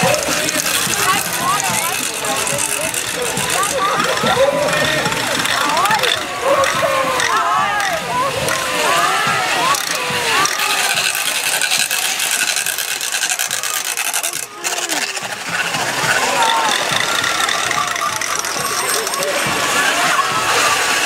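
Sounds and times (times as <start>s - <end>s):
noisemakers rattling: 0.0s - 21.0s
people whooping and shouting: 3.2s - 21.0s.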